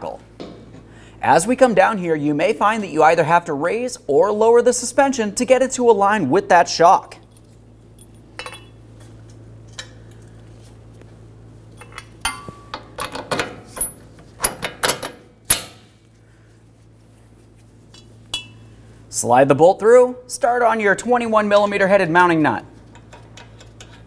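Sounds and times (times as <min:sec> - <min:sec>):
low steady hum: 0:00.0 - 0:24.0
metal bolt clinks and clicks: 0:07.3 - 0:08.8.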